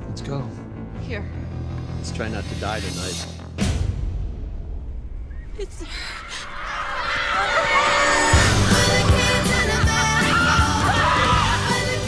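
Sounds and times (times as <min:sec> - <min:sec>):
shrill sliding squeals: 0:06.3 - 0:11.6.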